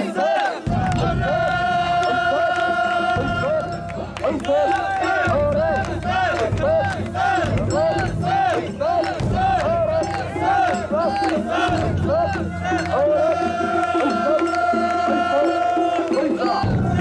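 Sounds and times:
crowd chanting in unison: 0.0 - 17.0
hand claps: 0.4 - 16.8.

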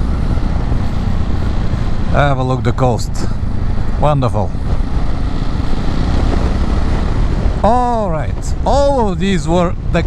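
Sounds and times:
motorcycle engine: 0.0 - 9.0
road noise: 0.0 - 10.0
wind on microphone: 3.5 - 7.6.

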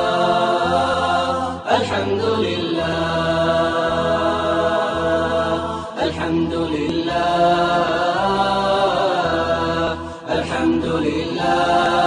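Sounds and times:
unaccompanied chanting voice: 0.0 - 12.0.

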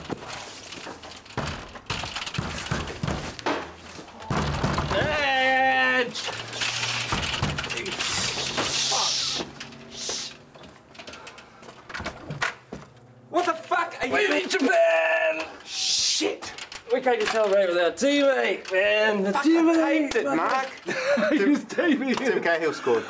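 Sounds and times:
knocking on door: 1.4 - 3.4
excited men's voices: 4.8 - 6.8, 7.5 - 10.4, 13.3 - 23.0
man shouting: 4.9 - 6.2, 14.0 - 16.5.

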